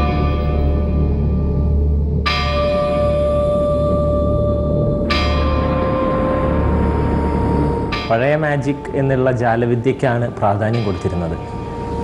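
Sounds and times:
bell tolling: 5.1 - 12.0.

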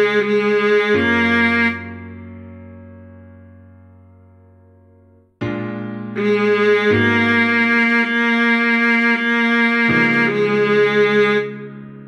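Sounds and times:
viola bowed melody: 0.0 - 4.1, 5.4 - 12.0.

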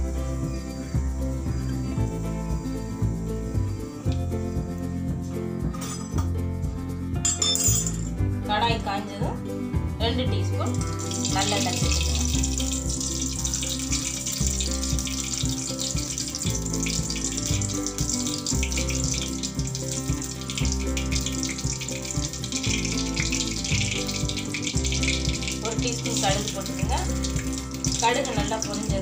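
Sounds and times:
background music with bass line: 0.0 - 29.0
liquid boiling in a pan: 10.8 - 29.0.

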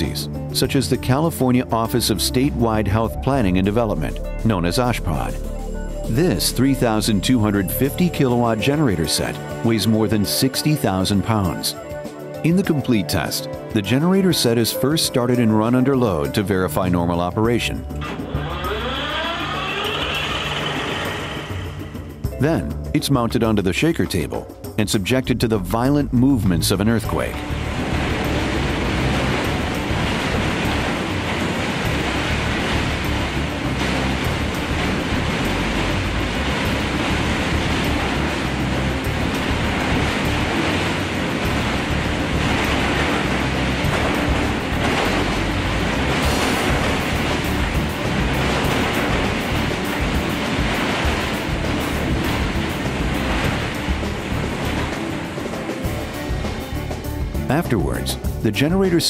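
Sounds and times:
background music: 0.0 - 59.0
loud machine din: 18.0 - 22.3.

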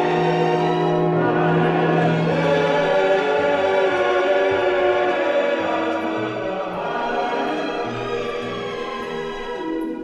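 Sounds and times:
choir singing held chords: 0.0 - 10.0
sustained orchestral strings: 0.0 - 10.0.

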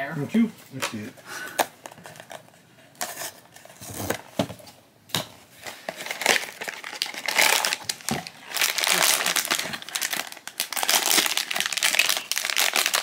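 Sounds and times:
foil bag crinkling: 5.6 - 13.0.

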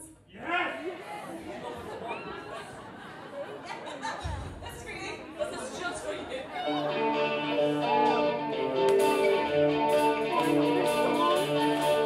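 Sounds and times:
chatter in a large hall: 0.0 - 12.0.

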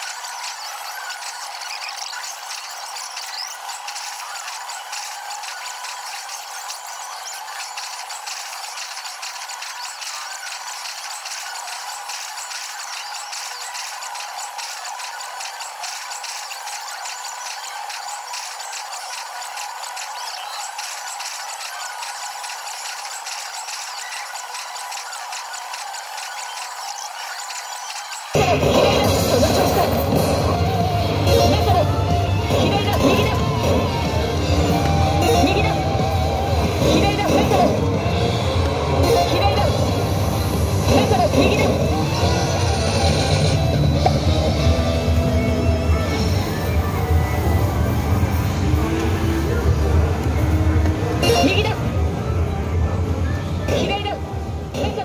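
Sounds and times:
slot machine rapid clatter: 0.0 - 55.0.

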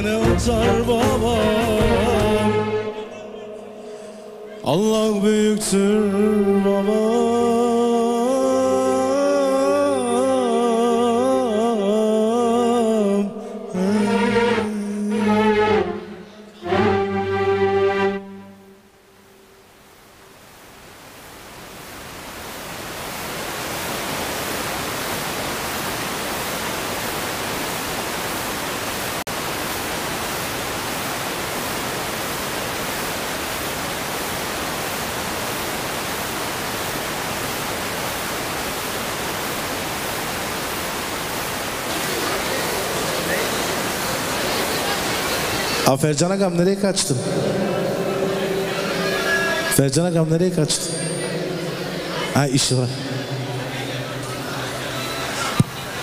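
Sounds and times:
person singing with music: 0.0 - 18.6
steady hiss: 18.7 - 56.0
faint voices: 41.9 - 46.0, 47.3 - 49.8, 51.1 - 56.0.

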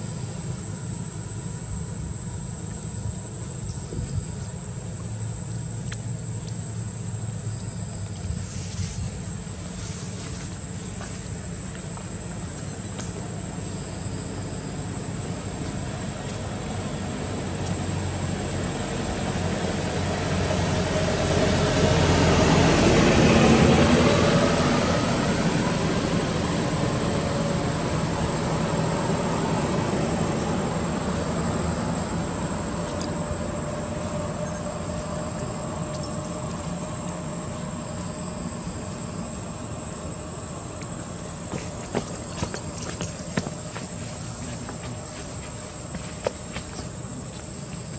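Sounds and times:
passing motor engine: 14.2 - 47.4.

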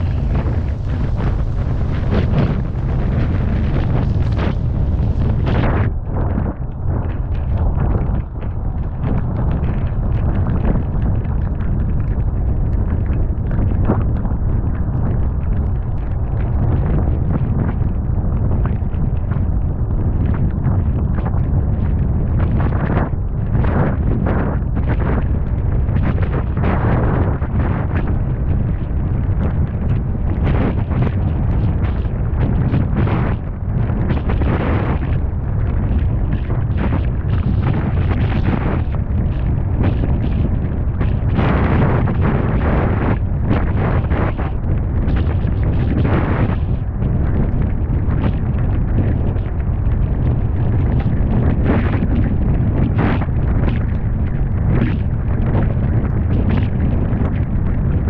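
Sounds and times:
strong wind buffeting microphone: 0.0 - 58.0.

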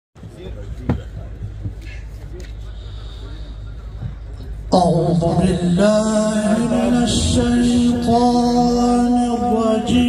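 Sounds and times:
steady low hum: 0.3 - 10.0.

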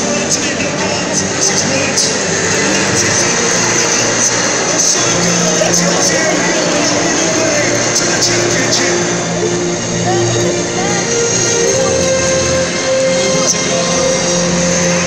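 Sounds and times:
crowd talking: 0.0 - 15.0
music over public-address system: 0.0 - 15.0.

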